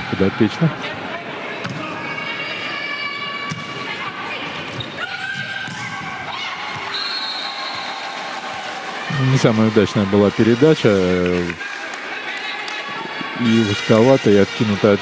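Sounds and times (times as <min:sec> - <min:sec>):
crowd noise: 0:00.0 - 0:15.0
crowd shouts: 0:00.0 - 0:15.0
long high whistle: 0:06.9 - 0:07.8.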